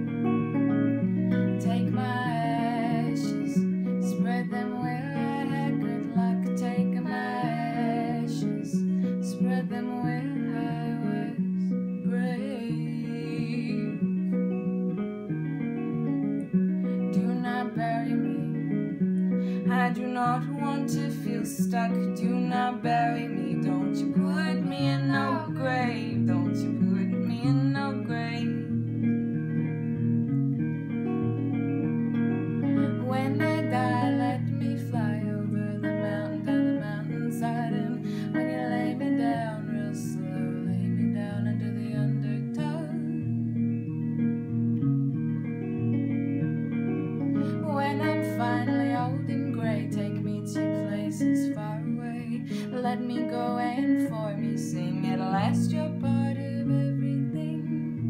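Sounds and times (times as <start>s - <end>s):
strummed guitar: 0.0s - 58.0s
woman singing folk song: 0.3s - 15.6s, 16.2s - 29.4s, 32.5s - 44.0s, 47.0s - 58.0s.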